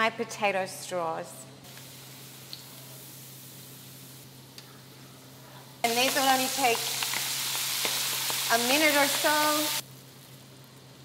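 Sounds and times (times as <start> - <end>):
hot oil hissing in a wok: 1.7 - 4.5, 5.2 - 11.0.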